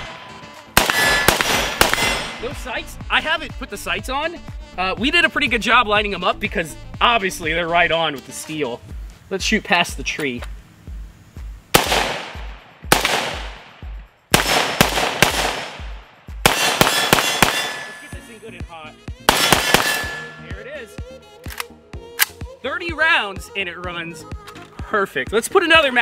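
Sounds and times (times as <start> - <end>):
rifle shots with long echo: 0.0 - 2.6, 11.7 - 18.2, 19.3 - 20.5.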